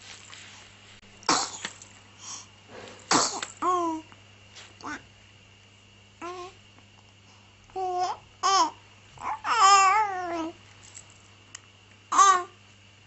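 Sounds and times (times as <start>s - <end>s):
baby cooing: 3.2s - 4.0s, 6.2s - 6.6s, 7.8s - 10.6s, 12.1s - 12.6s.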